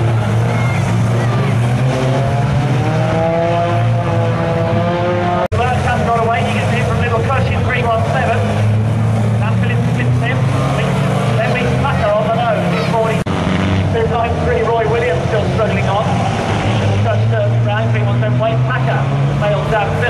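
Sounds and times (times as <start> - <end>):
racing car engines revving: 0.0 - 20.0.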